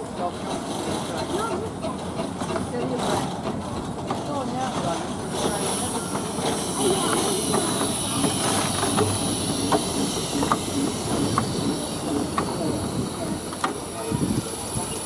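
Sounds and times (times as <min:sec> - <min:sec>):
people chattering: 0:00.0 - 0:15.0
train wheels clicking over rail joints: 0:00.0 - 0:15.0
high-pitched steam hiss: 0:05.2 - 0:15.0.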